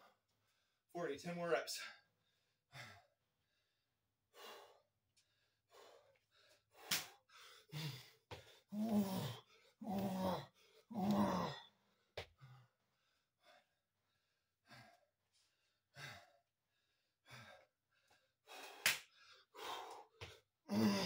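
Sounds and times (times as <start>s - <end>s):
man breathing heavily: 1.8s - 21.0s
man groaning exhale: 20.7s - 21.0s.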